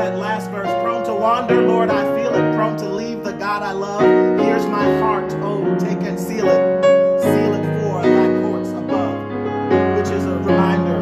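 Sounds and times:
man singing: 0.0 - 9.3, 9.9 - 11.0
grand piano chords: 0.0 - 11.0.

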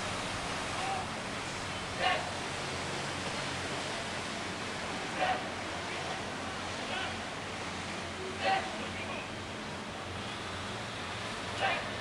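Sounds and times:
water: 0.0 - 12.0
wind: 0.0 - 12.0.

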